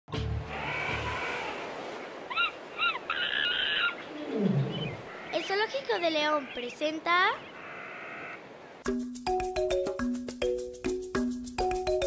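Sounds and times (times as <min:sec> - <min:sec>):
animal calls rising and falling: 0:00.4 - 0:05.4
low falling animal call: 0:00.4 - 0:05.4.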